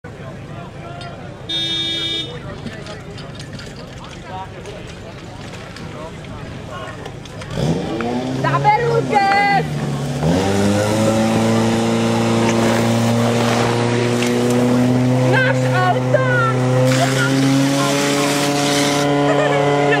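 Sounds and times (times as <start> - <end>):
pump engine running at high revs: 9.6 - 20.0.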